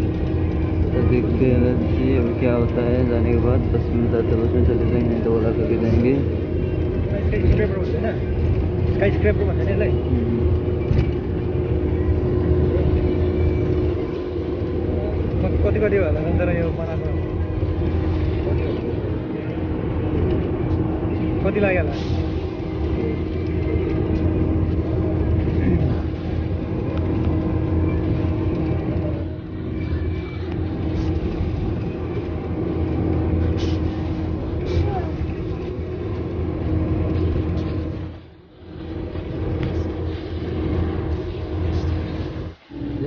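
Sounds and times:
road and engine noise: 0.0 - 43.0.

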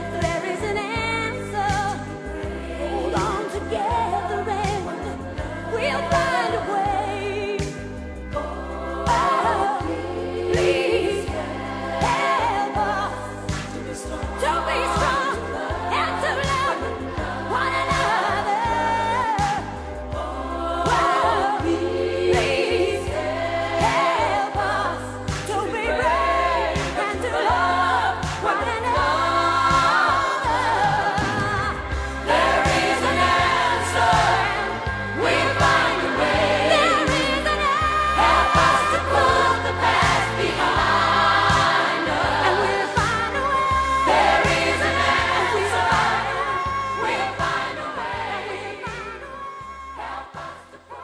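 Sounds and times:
pop band playing: 0.0 - 51.0.

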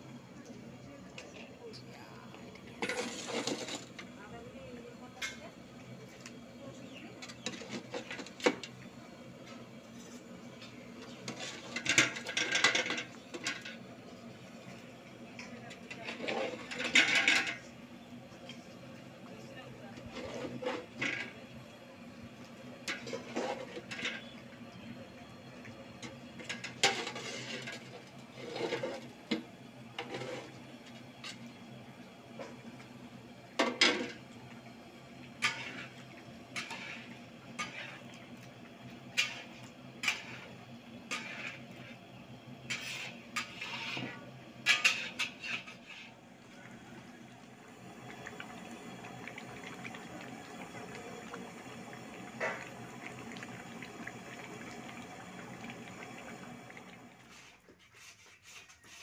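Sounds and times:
spatula scraping a metal wok: 2.8 - 4.0, 16.0 - 17.6, 20.1 - 21.3, 22.9 - 24.3, 26.4 - 29.1, 30.0 - 30.6, 35.4 - 38.0, 39.1 - 42.0, 42.6 - 46.2, 57.3 - 59.0.

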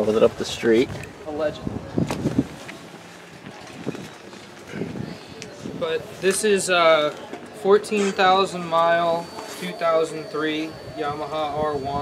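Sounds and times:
wind noise on microphone: 0.2 - 6.3, 10.3 - 12.0.

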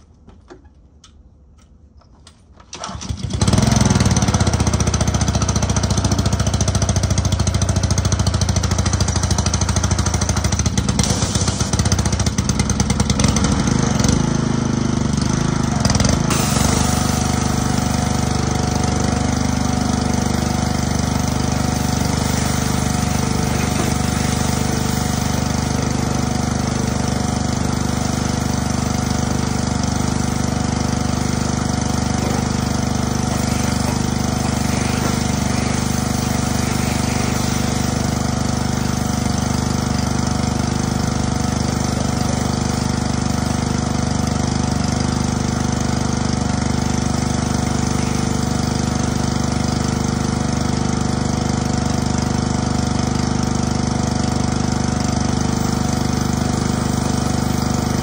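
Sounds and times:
pressure washer running: 2.8 - 58.0
water jet spraying on car: 8.5 - 12.6, 16.3 - 42.5, 47.2 - 50.0, 55.4 - 58.0.

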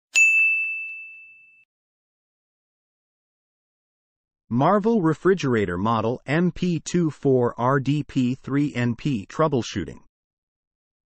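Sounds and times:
bright ding: 0.1 - 1.7.

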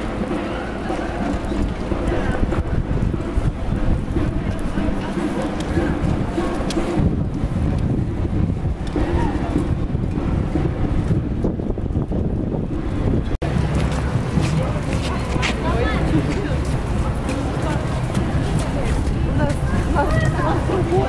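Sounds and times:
faint street voices: 0.0 - 21.0
wind buffeting microphone: 0.0 - 21.0.

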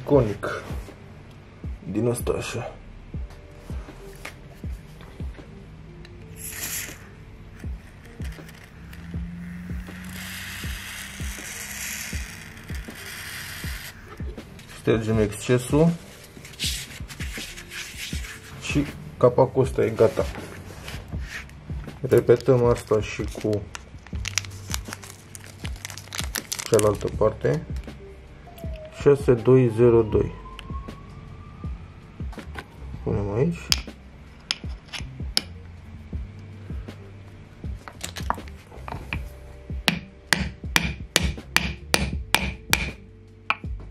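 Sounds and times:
background music with steady beat: 0.0 - 43.9
aerosol spray hissing: 6.4 - 7.2.

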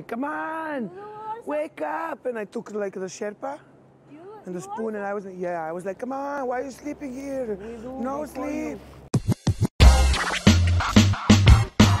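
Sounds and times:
electronic hip hop jingle: 9.2 - 12.0
turntable scratching: 9.2 - 12.0.

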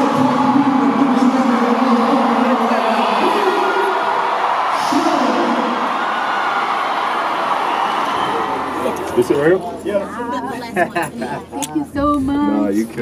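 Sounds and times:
arena crowd cheering: 0.0 - 11.1.

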